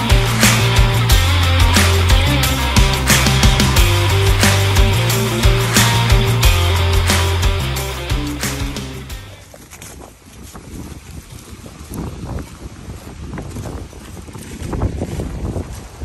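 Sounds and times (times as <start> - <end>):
background music: 0.0 - 9.4
footsteps on dry leaves: 9.1 - 16.0.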